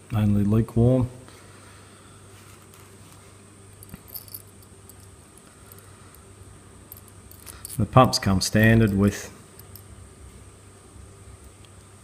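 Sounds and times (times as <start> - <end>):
small metal parts clicking and rattling: 3.8 - 5.9, 6.9 - 7.8, 8.8 - 9.9.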